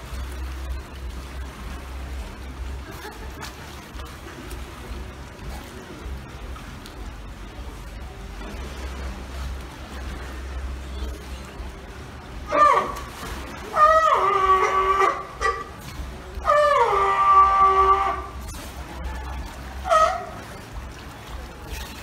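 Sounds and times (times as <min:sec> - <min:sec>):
seal calling: 0:12.4 - 0:15.8, 0:16.4 - 0:20.7.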